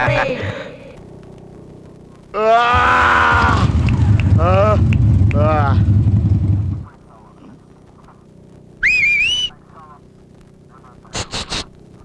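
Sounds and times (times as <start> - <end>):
loud low rumble: 2.7 - 6.9
rising wavering whistle: 8.8 - 9.5.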